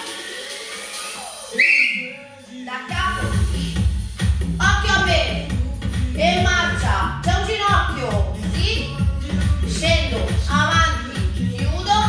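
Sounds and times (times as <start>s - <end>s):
loud whistle blast: 1.5s - 2.2s.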